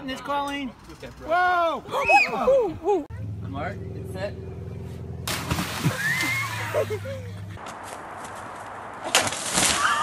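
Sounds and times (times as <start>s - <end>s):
water splashing: 5.3s - 7.0s.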